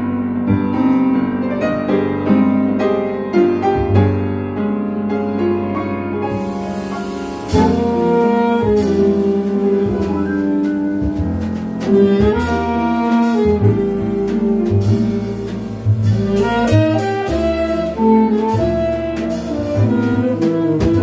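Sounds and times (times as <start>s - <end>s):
piano: 0.0s - 21.0s
drums with cymbals: 6.3s - 21.0s
upright bass: 6.3s - 21.0s
saxophones playing melody: 7.4s - 21.0s.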